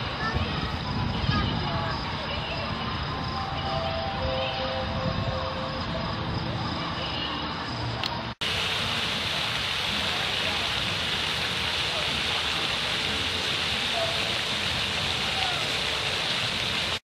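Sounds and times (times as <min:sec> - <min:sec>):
faint distant voices: 0:00.0 - 0:16.9
fountain jets spraying water: 0:00.0 - 0:17.0.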